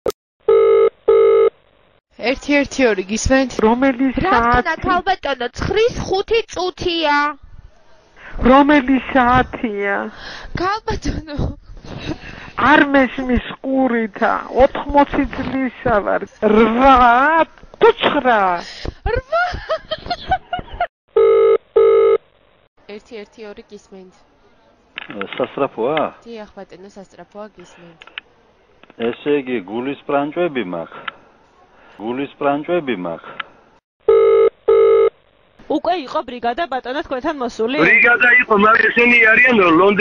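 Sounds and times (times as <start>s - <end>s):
telephone line beeps: 0.5s - 1.5s, 21.2s - 22.2s, 34.1s - 35.1s
voice on phone line: 37.8s - 40.0s.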